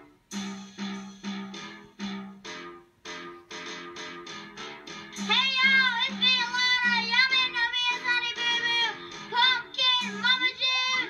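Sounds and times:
backing music: 0.0 - 11.0
child singing a pop song: 5.2 - 11.0.

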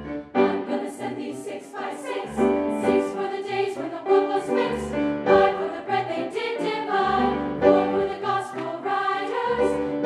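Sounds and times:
women's choir singing: 0.4 - 10.0.

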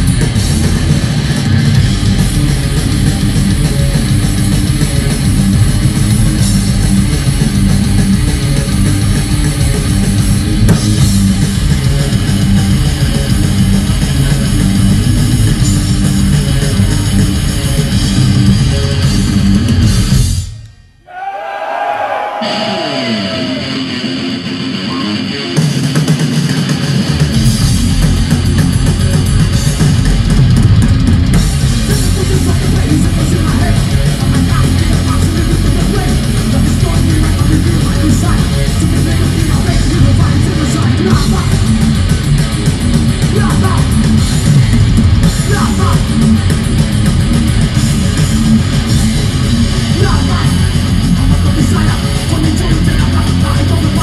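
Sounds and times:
fast drum kit: 0.0 - 20.6, 22.4 - 54.0
bass guitar: 0.0 - 20.7, 21.9 - 54.0
distorted electric guitars: 0.0 - 21.0, 22.1 - 54.0
bending guitar notes: 22.3 - 26.4.

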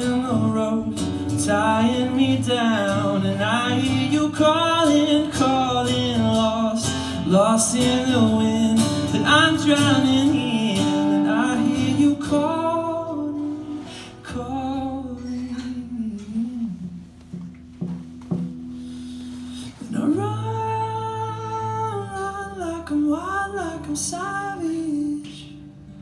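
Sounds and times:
acoustic guitar: 0.0 - 26.0.

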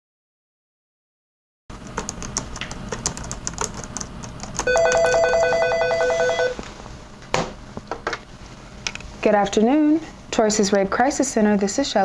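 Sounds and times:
laptop keyboard typing: 1.8 - 6.5
desk phone ringing: 4.6 - 6.7.

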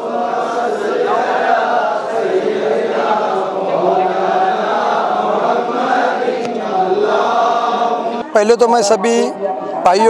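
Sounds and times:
men chanting together: 0.0 - 8.3.

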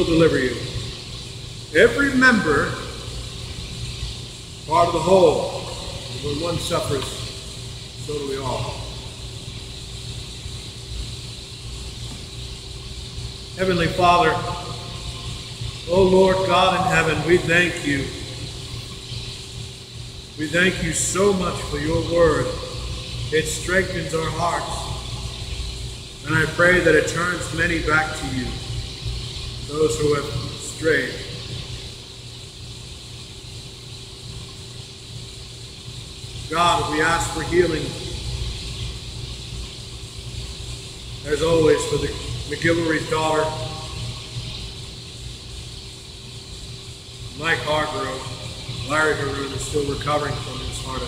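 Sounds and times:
faint steady hum: 0.0 - 51.0
room background rumble and hiss: 0.0 - 51.0.

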